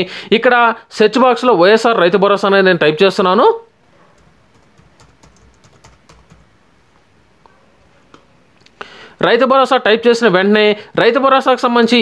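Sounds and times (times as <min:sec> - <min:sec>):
computer keyboard typing: 0:04.2 - 0:06.5.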